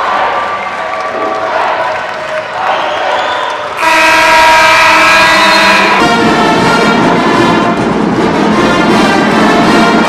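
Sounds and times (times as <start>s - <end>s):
loud gym horn: 3.8s - 7.9s.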